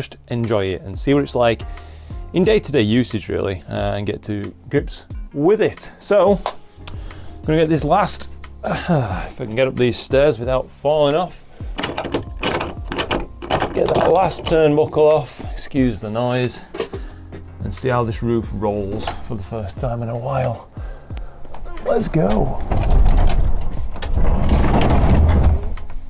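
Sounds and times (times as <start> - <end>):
metal turnbuckle clicking and rattling: 11.8 - 14.8
roof rolling on rails: 22.1 - 26.0.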